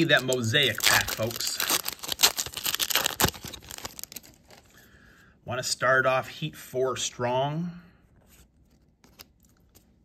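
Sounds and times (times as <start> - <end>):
foil wrapper tearing and crinkling: 0.0 - 4.6.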